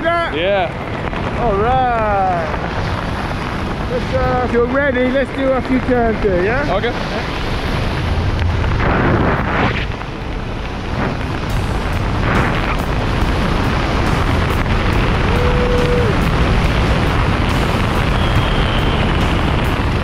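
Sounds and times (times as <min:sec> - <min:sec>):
wind rushing across microphone: 0:00.0 - 0:20.0.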